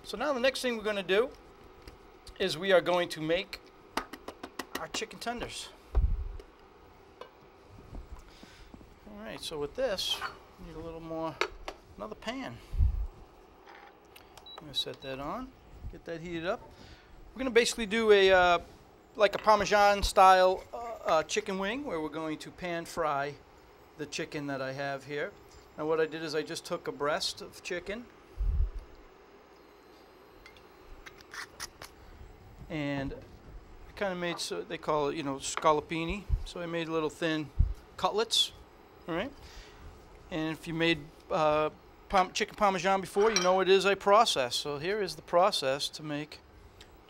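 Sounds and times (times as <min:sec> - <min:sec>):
faint steady hum: 0:00.0 - 0:47.0.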